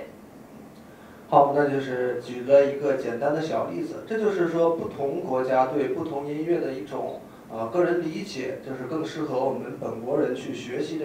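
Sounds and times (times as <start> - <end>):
man speaking into a microphone: 1.3 - 11.0.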